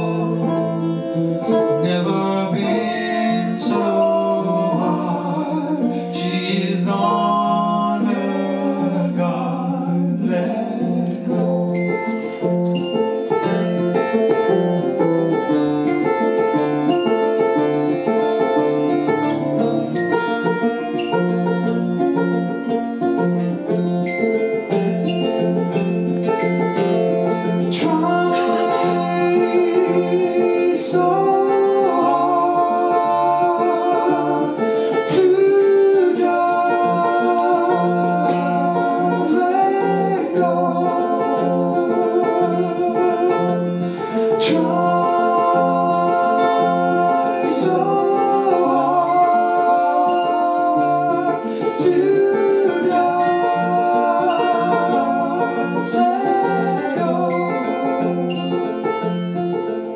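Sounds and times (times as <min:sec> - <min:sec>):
banjo picking: 0:00.0 - 0:59.9
strummed acoustic guitar: 0:00.0 - 0:59.9.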